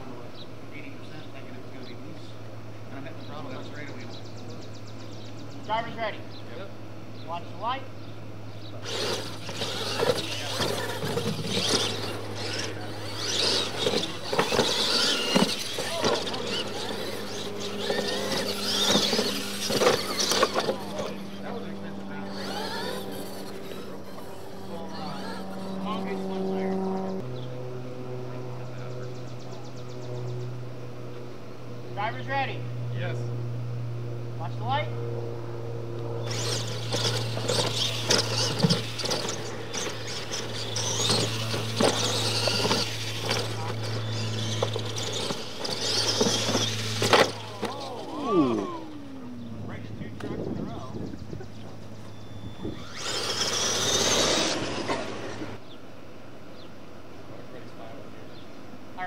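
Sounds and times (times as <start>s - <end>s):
rc trucks on dirt track: 0.0s - 33.4s, 34.2s - 59.0s
steady low hum: 0.0s - 59.0s
electric motor whining: 8.4s - 31.8s, 35.0s - 55.7s.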